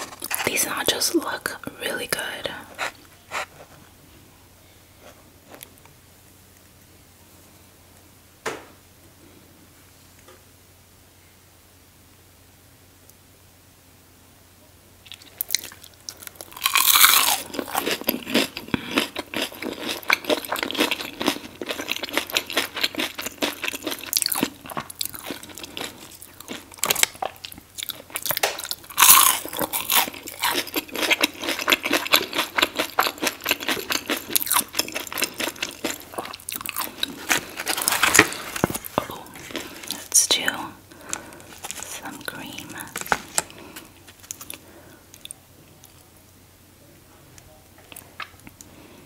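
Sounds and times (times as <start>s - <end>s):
crunchy biting and chewing: 15.1s - 40.1s.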